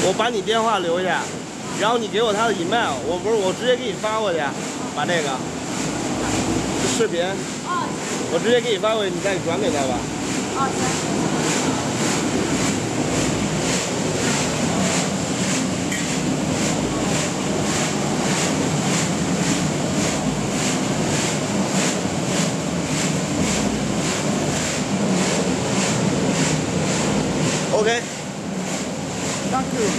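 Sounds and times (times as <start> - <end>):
motor hum: 0.0 - 29.9.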